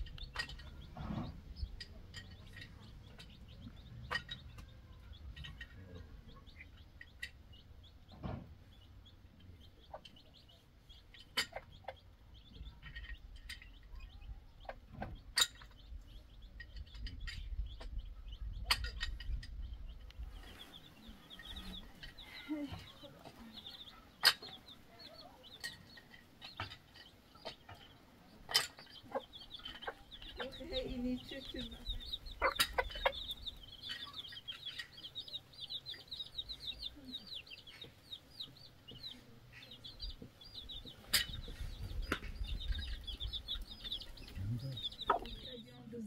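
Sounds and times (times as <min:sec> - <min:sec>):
chickens clucking faintly: 0:00.0 - 0:46.0.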